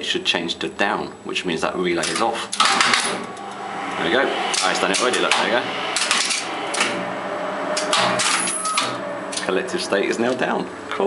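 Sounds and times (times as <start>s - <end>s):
steady low hum: 1.2s - 11.0s
relays clacking: 2.0s - 3.6s, 4.5s - 7.0s, 7.7s - 10.5s.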